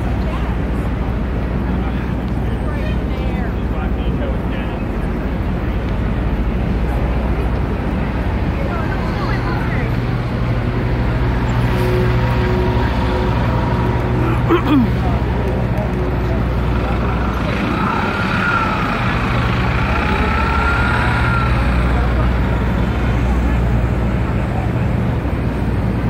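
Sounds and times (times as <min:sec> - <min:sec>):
crowd chatter: 0:00.0 - 0:26.0
traffic rumble: 0:00.0 - 0:26.0.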